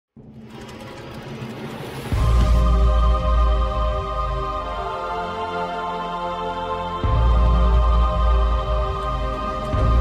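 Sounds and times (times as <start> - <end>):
intro music: 0.2 - 10.0.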